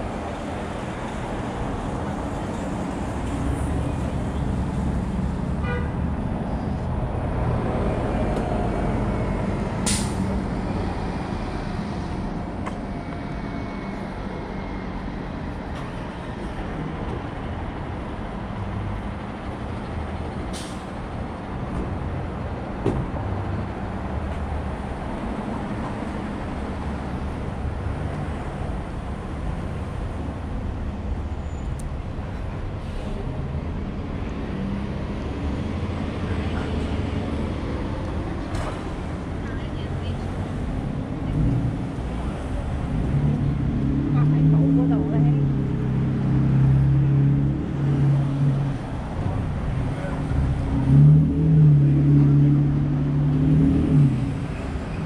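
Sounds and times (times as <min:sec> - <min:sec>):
traffic rumble: 0:00.0 - 0:55.0.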